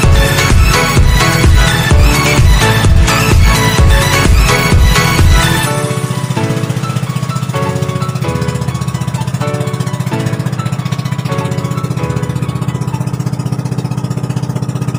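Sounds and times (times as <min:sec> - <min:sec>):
background music: 0:00.0 - 0:14.9
boat engine running: 0:00.0 - 0:14.9.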